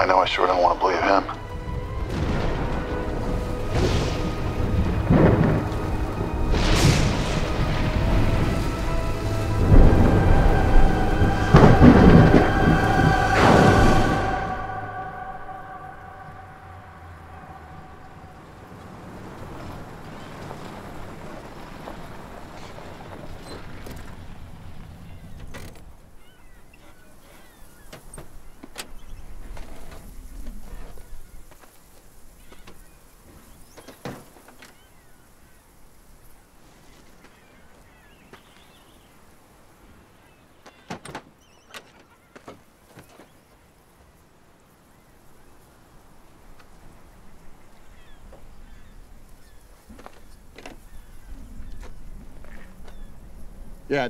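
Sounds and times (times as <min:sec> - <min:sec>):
film music: 0:00.0 - 0:21.4
heavy rain: 0:00.0 - 0:40.7, 0:42.6 - 0:54.0
thunder: 0:01.5 - 0:24.8.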